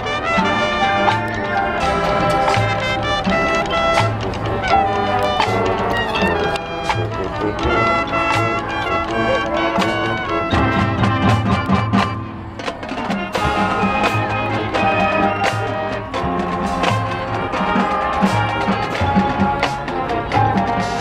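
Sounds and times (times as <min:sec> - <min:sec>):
brass horns sustained chords: 0:00.0 - 0:21.0
drumline beat: 0:00.0 - 0:21.0.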